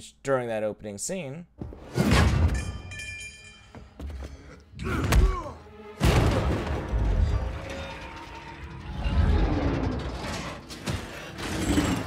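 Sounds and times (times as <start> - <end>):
quiet musical score: 4.2 - 12.0
metallic grinding and ratcheting: 7.1 - 12.0.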